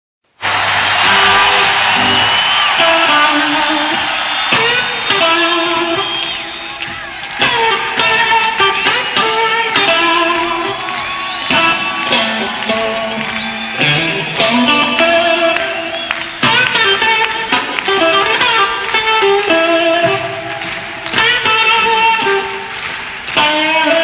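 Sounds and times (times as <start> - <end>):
rock band music: 0.7 - 24.0
electric guitar lead with bent notes: 1.0 - 24.0.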